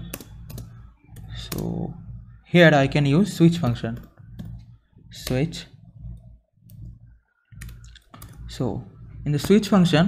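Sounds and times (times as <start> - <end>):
computer clicks: 0.0 - 1.8
low steady hum: 0.0 - 10.0.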